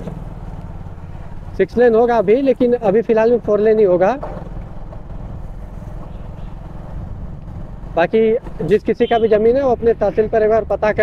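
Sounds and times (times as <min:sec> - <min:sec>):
moving vehicle rumble: 0:00.0 - 0:11.0.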